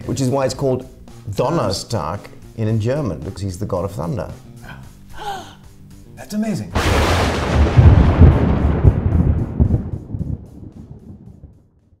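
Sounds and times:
thunder rumbling: 0:06.8 - 0:11.8.

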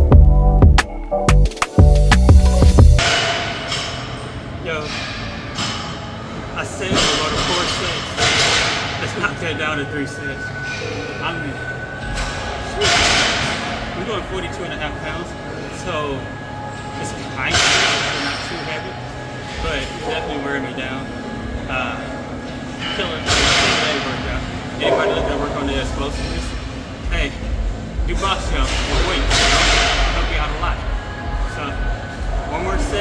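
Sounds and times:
people talking indistinctly: 0:23.0 - 0:29.3.

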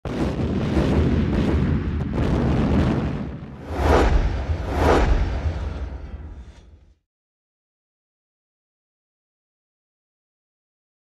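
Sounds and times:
deep rumbling boom: 0:00.1 - 0:06.9.

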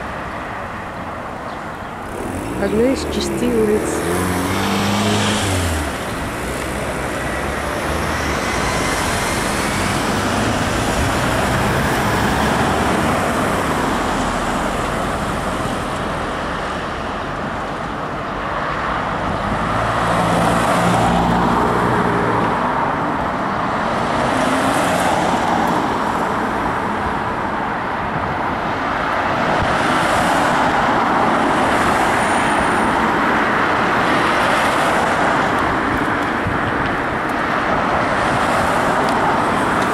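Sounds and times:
cars passing on a street: 0:00.0 - 0:39.9.

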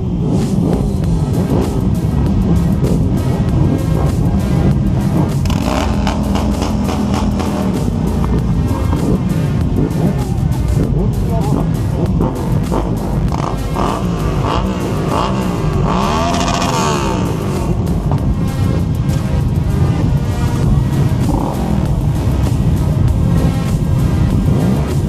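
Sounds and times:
motorcycle engines revving: 0:00.0 - 0:25.0
music playing: 0:00.0 - 0:25.0.

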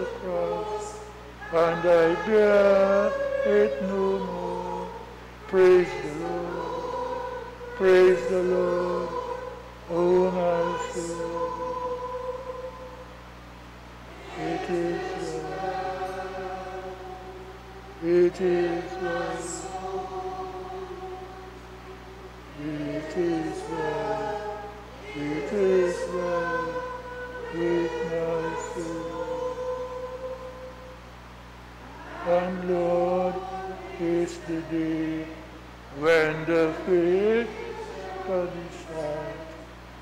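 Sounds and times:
congregation singing a hymn: 0:00.0 - 0:40.0
low steady hum: 0:00.0 - 0:40.0.

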